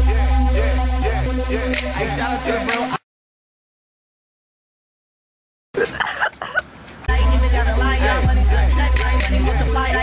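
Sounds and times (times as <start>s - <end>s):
person coughing: 5.8s - 6.6s.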